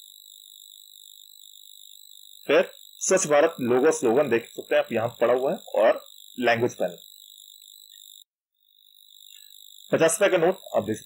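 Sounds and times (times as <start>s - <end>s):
background hiss: 0.0s - 11.0s
high-pitched electronic whine: 0.0s - 11.0s.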